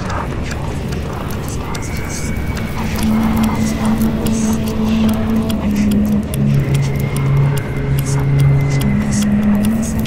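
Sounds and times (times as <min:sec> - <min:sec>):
hi-hat ticks: 0:00.0 - 0:10.0.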